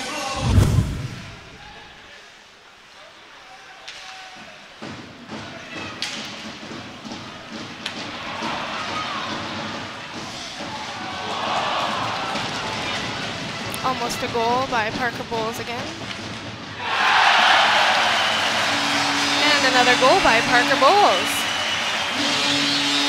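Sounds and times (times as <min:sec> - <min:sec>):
arena crowd noise: 0:01.2 - 0:23.0.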